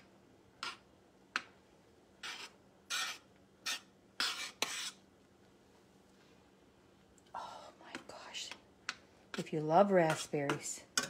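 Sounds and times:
metal spoon scraping saucepan: 2.2 - 5.0.

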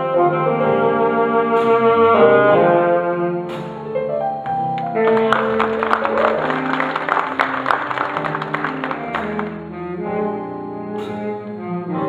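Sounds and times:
jazz big band playing: 0.0 - 12.0
audience clapping: 4.8 - 9.6.

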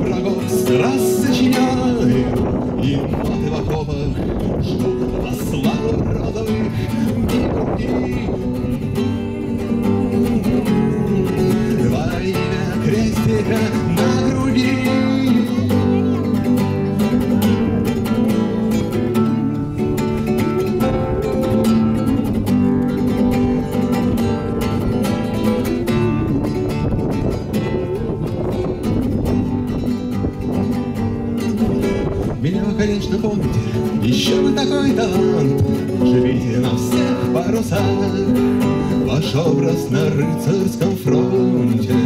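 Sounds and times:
acoustic guitar plucking: 0.0 - 42.0.

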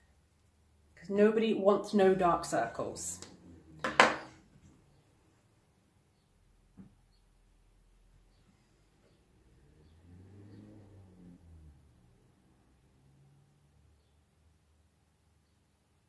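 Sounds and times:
faint low sound: 0.0 - 14.5.

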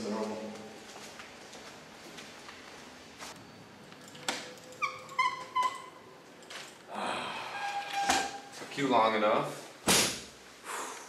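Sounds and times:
door hinges squeaking: 4.2 - 6.2, 7.4 - 8.6.

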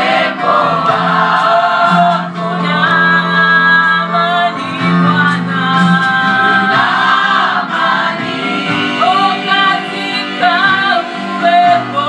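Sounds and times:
choir singing gospel song: 0.0 - 4.8, 5.4 - 12.0
steady musical backing: 0.0 - 12.0.

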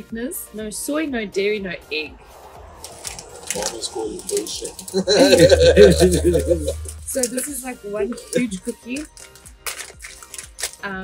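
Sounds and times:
background music: 0.0 - 11.0
person speaking: 3.5 - 8.6
wrapper crinkling: 9.0 - 10.9.

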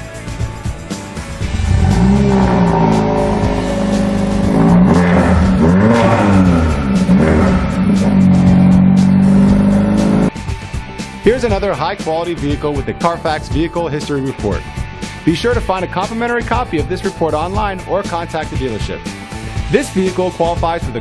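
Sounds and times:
car engine revving: 1.4 - 10.4.

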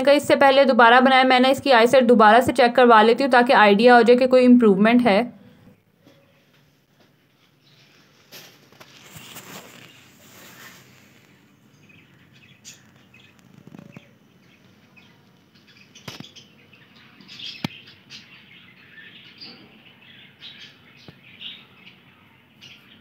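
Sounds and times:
birds chirping: 7.4 - 23.0.

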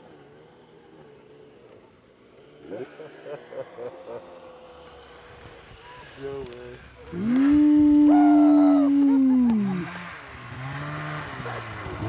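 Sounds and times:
low vocal sound: 7.1 - 10.0
man yelling: 7.4 - 9.9.

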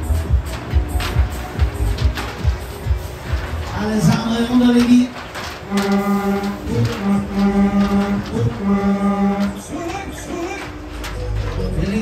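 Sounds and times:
pulsing chant-like calls over loudspeakers: 3.8 - 11.0.

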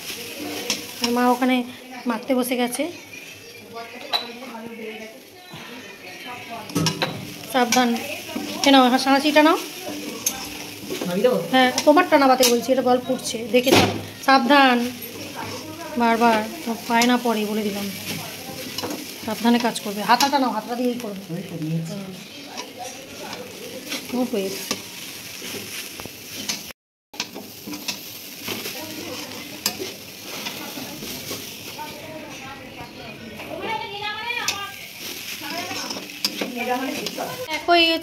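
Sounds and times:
metal spatula scraping wok: 0.0 - 4.8, 5.6 - 32.4, 33.3 - 37.6
light sizzle: 0.0 - 38.0
spatula scraping a metal pan: 0.2 - 1.2, 6.8 - 13.7, 34.4 - 37.4.

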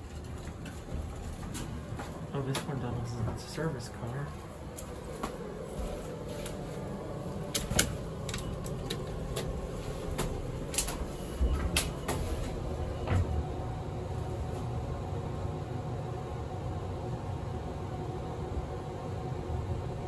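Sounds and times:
elevator hum: 0.0 - 20.0.

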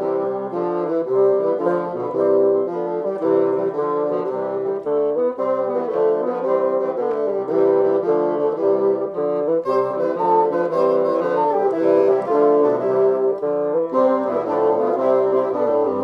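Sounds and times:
bassoon ensemble playing: 0.0 - 16.0.

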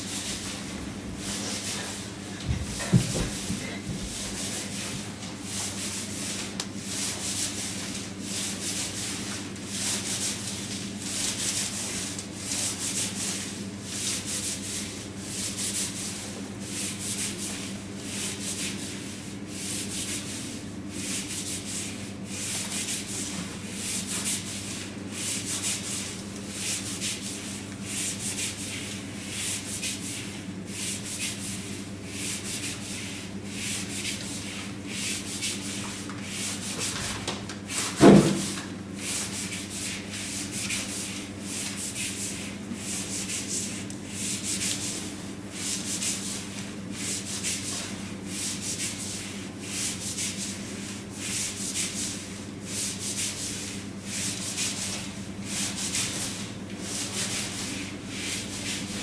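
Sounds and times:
steady low hum: 0.0 - 59.0
rubbing or scraping strokes: 37.7 - 59.0.

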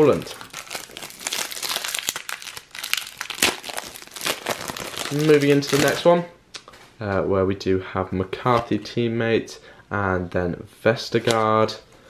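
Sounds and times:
foil pack crinkling and tearing: 0.0 - 6.1.

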